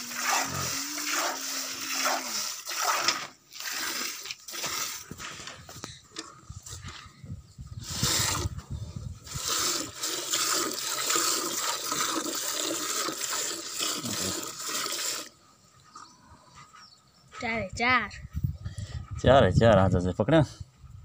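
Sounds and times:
milk squirting into metal pot: 0.0s - 5.2s, 9.2s - 15.3s.

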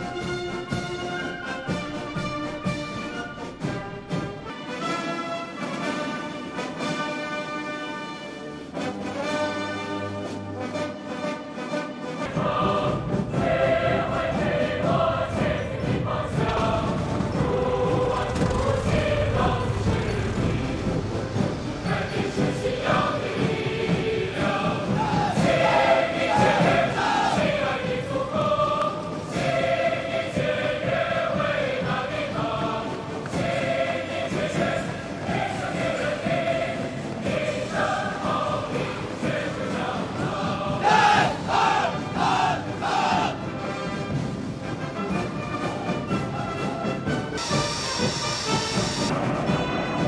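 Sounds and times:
choir singing with band: 12.1s - 44.3s, 47.3s - 50.0s
high hiss: 47.4s - 49.1s.

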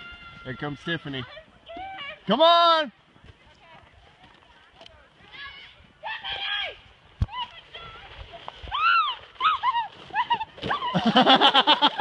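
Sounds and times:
people squealing: 8.7s - 11.2s.

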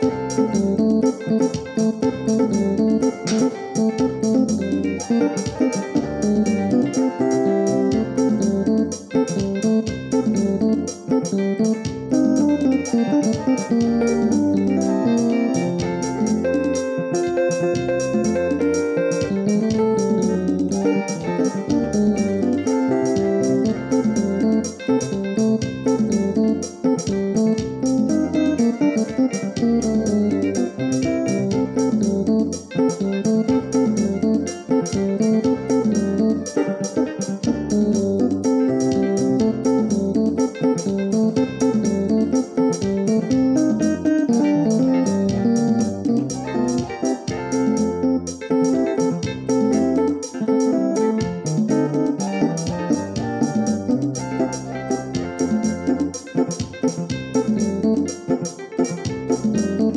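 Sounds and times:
electronic keyboard music: 0.0s - 59.9s.

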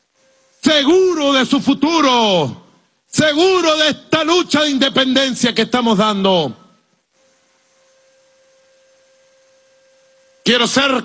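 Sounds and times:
faint hiss: 0.0s - 4.2s, 5.9s - 11.0s.

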